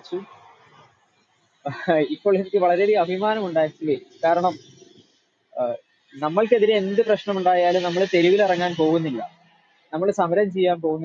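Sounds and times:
person talking: 0:01.7 - 0:04.6, 0:05.6 - 0:09.3, 0:10.0 - 0:11.0.

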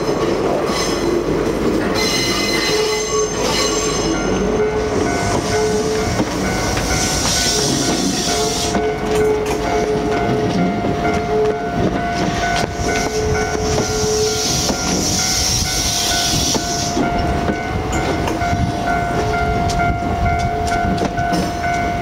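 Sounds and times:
train wheels clicking over rail joints: 0:00.2 - 0:22.0.

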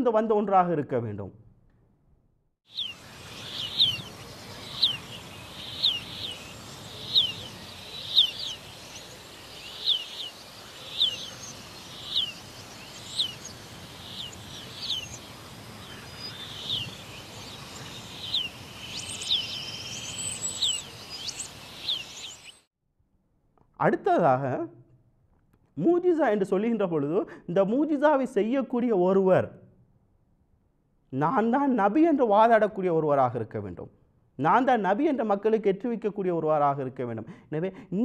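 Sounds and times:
bird chirping: 0:02.7 - 0:22.7
outdoor background hiss: 0:02.7 - 0:22.7.

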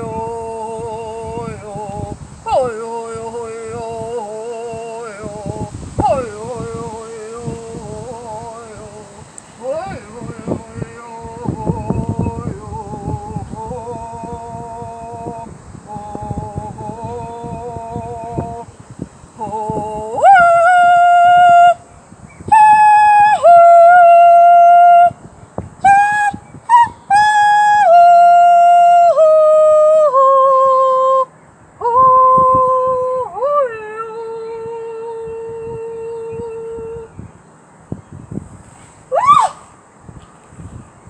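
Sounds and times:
woman singing wordless held notes: 0:00.0 - 0:37.2
rising vocal whoop: 0:39.1 - 0:39.7.

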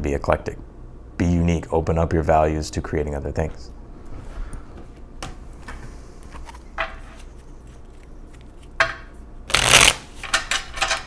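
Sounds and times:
cards being shuffled: 0:06.3 - 0:08.8, 0:09.5 - 0:10.2.

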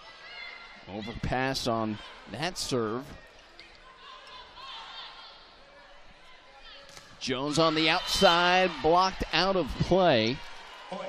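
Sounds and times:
low arena crowd: 0:00.0 - 0:11.0.

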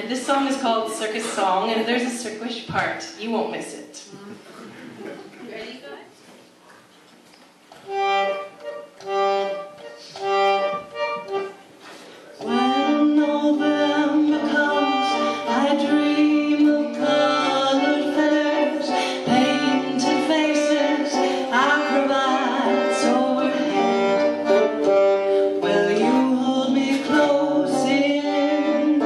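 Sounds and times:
harmonium chords: 0:07.8 - 0:29.0.

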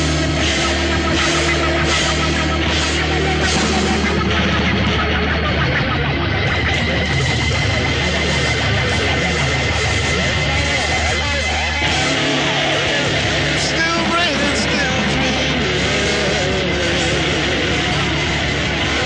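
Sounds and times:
electric guitar high note: 0:00.0 - 0:19.0
loud rock music: 0:00.0 - 0:19.0.

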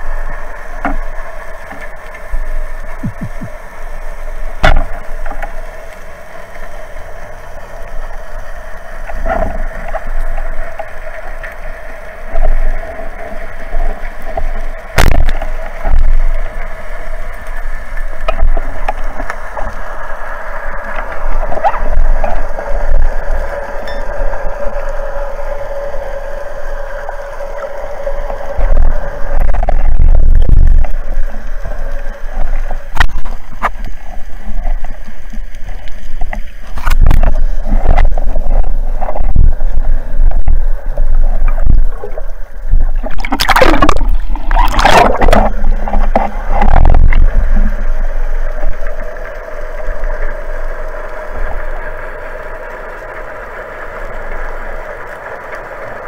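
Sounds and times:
low rumbling water noise: 0:00.0 - 0:56.0
underwater drone: 0:00.0 - 0:56.0.

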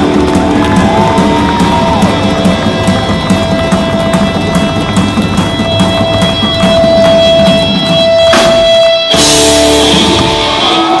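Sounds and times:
electric guitar: 0:00.0 - 0:11.0
steady drum beat: 0:00.0 - 0:11.0.

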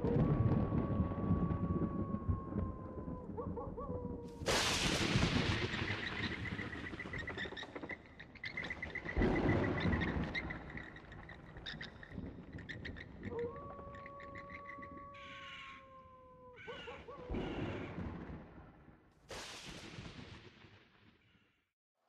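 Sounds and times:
long falling animal call: 0:00.0 - 0:07.9, 0:12.7 - 0:17.9.

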